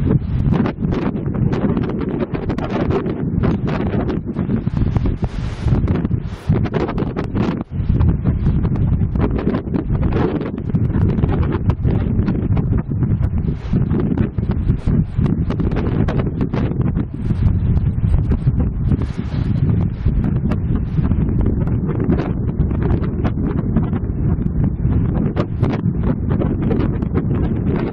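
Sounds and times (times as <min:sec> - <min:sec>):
wind buffeting microphone: 0:00.0 - 0:27.9.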